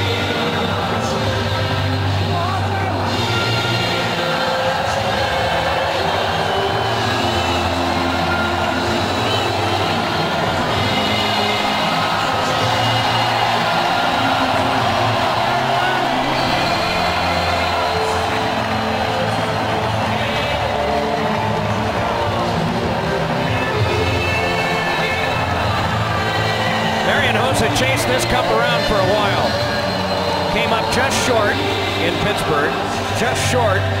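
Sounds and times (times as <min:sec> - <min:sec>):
crowd cheering: 0:00.0 - 0:34.0.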